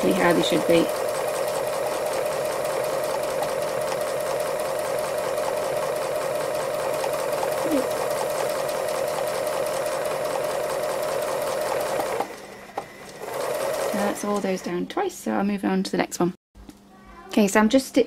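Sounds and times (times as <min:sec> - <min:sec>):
sewing machine running: 0:00.0 - 0:14.8.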